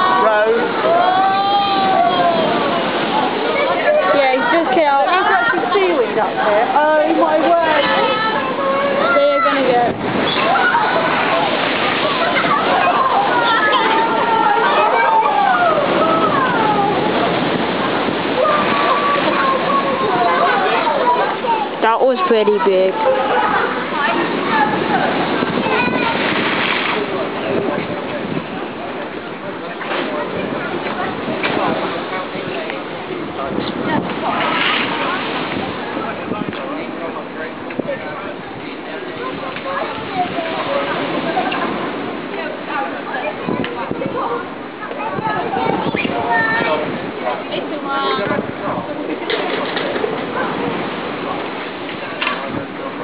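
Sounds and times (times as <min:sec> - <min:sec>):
wave breaking against sea wall: 0:00.0 - 0:53.0
wind on microphone: 0:00.0 - 0:53.0.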